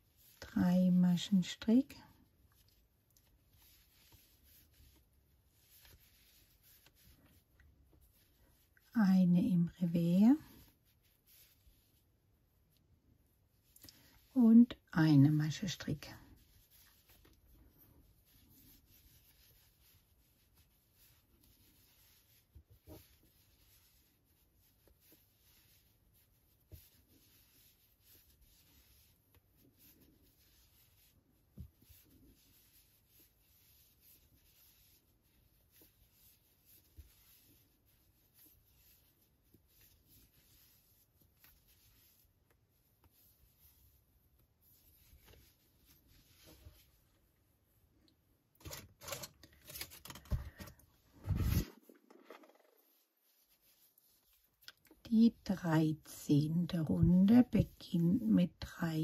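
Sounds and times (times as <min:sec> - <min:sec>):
yarn rubbing on crochet hook: 0:00.0 - 0:12.2, 0:13.6 - 0:47.1, 0:51.2 - 0:59.0
rustling from handling work: 0:15.2 - 0:47.7, 0:48.5 - 0:55.5.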